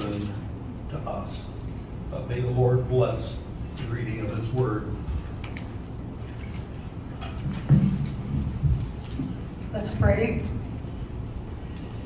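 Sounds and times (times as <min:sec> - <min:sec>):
low thumps and rumbling: 0:07.0 - 0:10.7.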